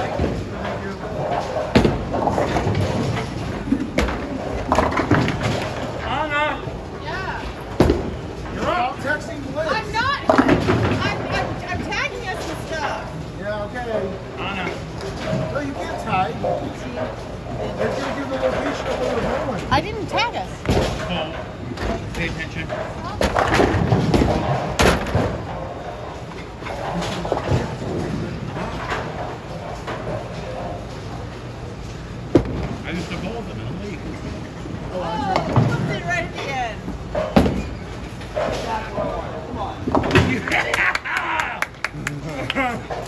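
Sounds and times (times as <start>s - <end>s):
bowling balls knocking pins: 0.0s - 6.1s, 10.1s - 12.7s, 15.0s - 31.5s, 34.3s - 36.1s, 36.9s - 40.7s
bowling balls rolling: 0.0s - 33.3s, 34.0s - 41.9s.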